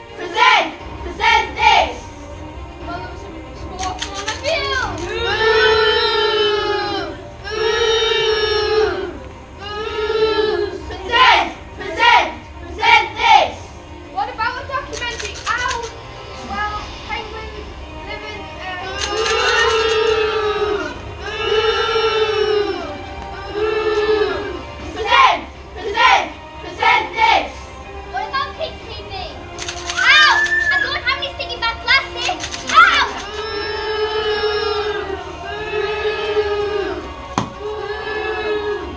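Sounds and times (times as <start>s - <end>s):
music: 0.0s - 38.9s
children shouting: 3.8s - 13.5s, 18.9s - 27.5s, 29.6s - 31.1s, 32.1s - 38.9s.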